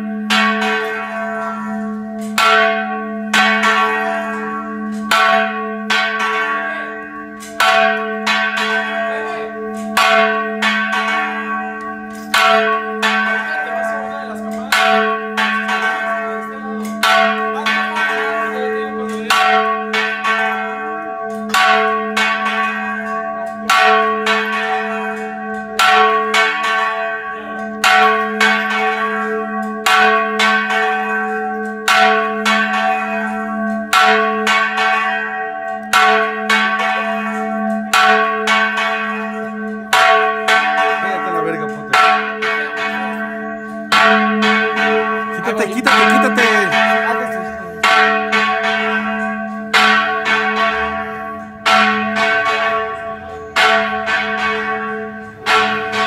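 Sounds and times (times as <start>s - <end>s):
low hum of large bell: 0.0s - 45.4s, 46.7s - 56.0s
church bells ringing: 0.0s - 56.0s.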